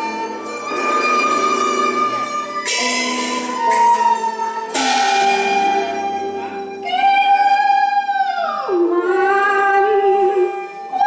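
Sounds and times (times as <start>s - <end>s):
string instruments playing: 0.0s - 11.0s.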